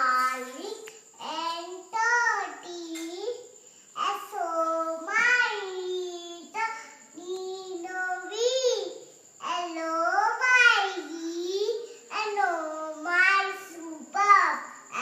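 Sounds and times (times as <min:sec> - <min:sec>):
girl singing unaccompanied: 0:00.0 - 0:15.0.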